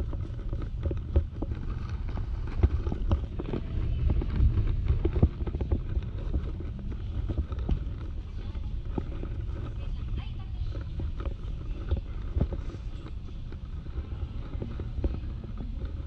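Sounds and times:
low microphone rumble: 0.0 - 16.0.

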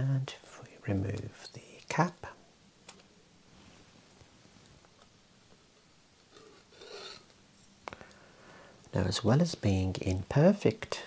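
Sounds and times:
rubbing and scraping of wood: 6.3 - 7.3.

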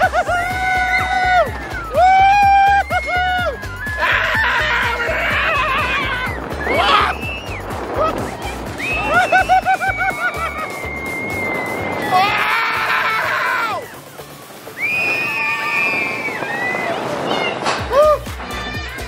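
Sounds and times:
riders screaming: 0.0 - 14.0, 14.7 - 19.0
background music with beat: 0.0 - 16.4, 17.7 - 19.0.

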